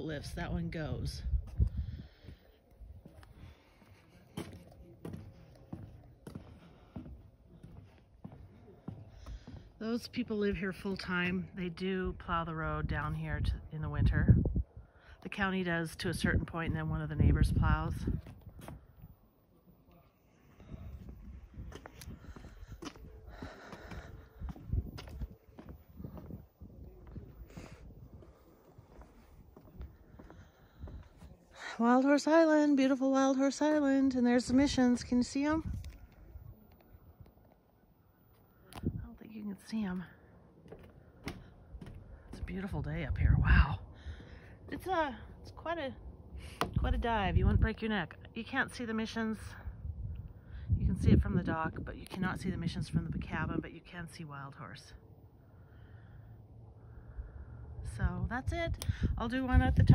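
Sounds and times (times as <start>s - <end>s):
footsteps on wooden deck boards: 1.4s - 11.3s, 21.1s - 31.3s, 40.4s - 43.1s
footsteps on wooden boards: 3.0s - 9.8s, 40.6s - 42.7s
low microphone rumble: 40.8s - 48.4s, 49.4s - 53.7s, 56.6s - 59.9s.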